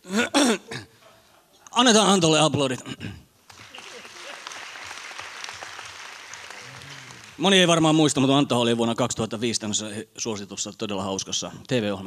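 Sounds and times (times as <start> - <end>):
man clearing throat: 0.0 - 1.2, 2.8 - 3.3.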